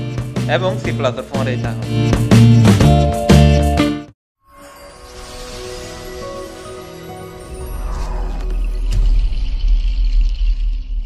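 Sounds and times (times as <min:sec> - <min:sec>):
high shimmering layer: 0:04.5 - 0:10.4.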